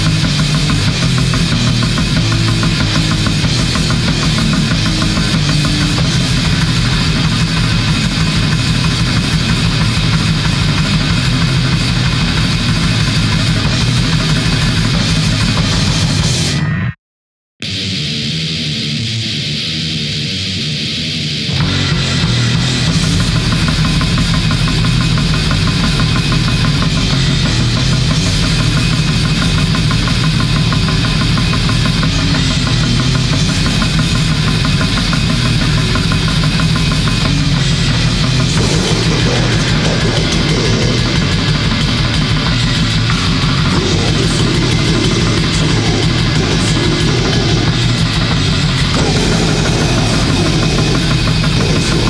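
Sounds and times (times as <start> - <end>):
black metal music: 0.0 - 16.8, 17.6 - 52.0.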